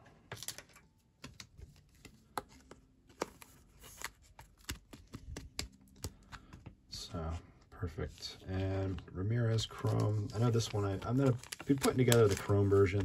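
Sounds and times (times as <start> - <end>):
trading cards being shuffled: 1.2 - 6.7, 8.5 - 13.0.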